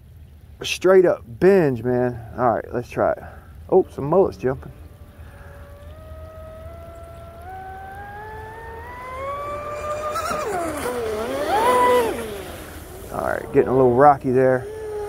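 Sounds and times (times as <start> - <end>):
electric motor of rc boat whining: 3.9 - 15.0.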